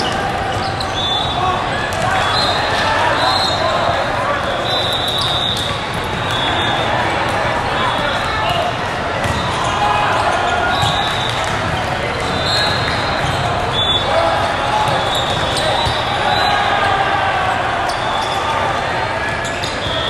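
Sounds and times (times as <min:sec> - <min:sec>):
babble of many voices: 0:00.0 - 0:20.0
volleyballs struck and bouncing: 0:05.2 - 0:16.1.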